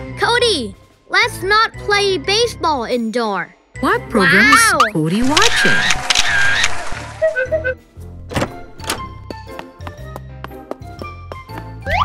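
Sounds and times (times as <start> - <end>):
light background music: 0.0 - 12.0
cartoon door clunks: 8.3 - 9.2.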